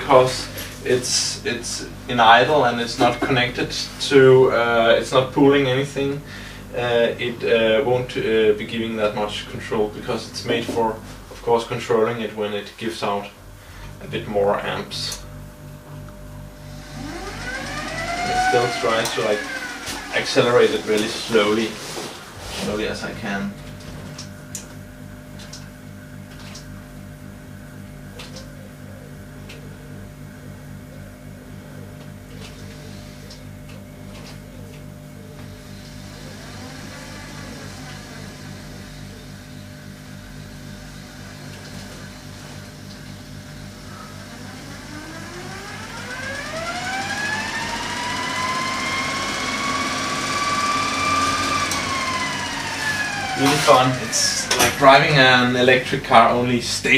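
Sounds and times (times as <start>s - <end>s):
electric motor hum and whine: 0.0s - 56.9s.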